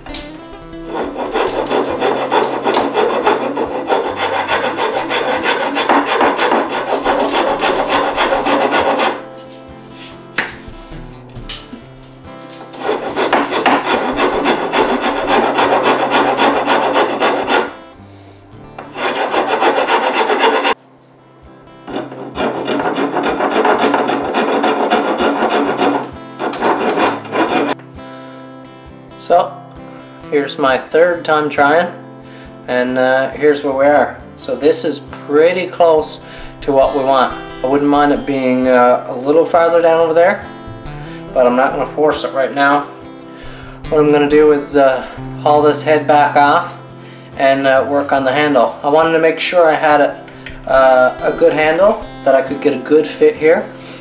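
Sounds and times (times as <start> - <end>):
metal file rasping on wood: 0.7 - 9.3, 12.6 - 17.9, 18.8 - 20.8, 21.9 - 27.8.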